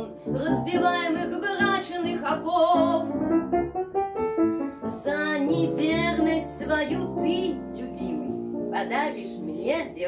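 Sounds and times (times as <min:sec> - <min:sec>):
piano playing: 0:00.0 - 0:10.0.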